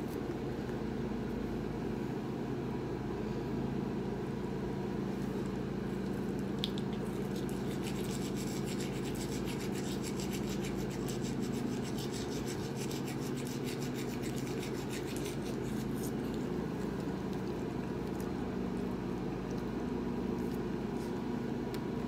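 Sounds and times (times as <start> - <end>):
steady low hum: 0.0 - 22.0
toothbrush scrubbing teeth: 6.6 - 18.4.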